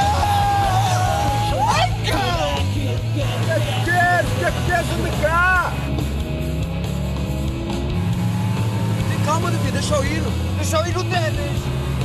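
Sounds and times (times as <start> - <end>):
voices calling out: 0.0 - 5.9
car engine running: 0.0 - 12.0.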